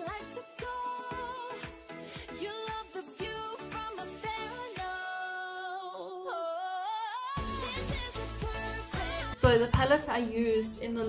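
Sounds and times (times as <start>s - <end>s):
pop music held sung note: 0.0s - 11.0s.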